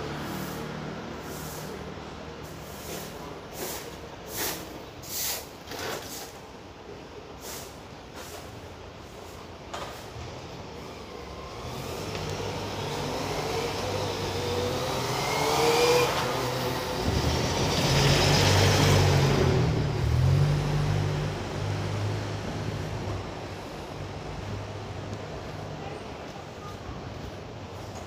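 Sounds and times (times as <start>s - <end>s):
bus engine passing by: 0.0s - 4.5s, 10.1s - 25.8s.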